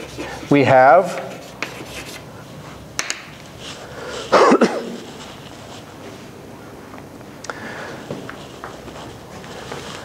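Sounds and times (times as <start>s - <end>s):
man coughing: 4.2s - 5.1s.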